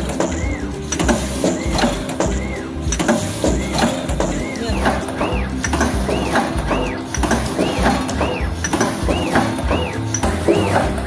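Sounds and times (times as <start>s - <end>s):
machine motor whine: 0.0s - 11.0s
mechanical clicking: 0.0s - 11.0s.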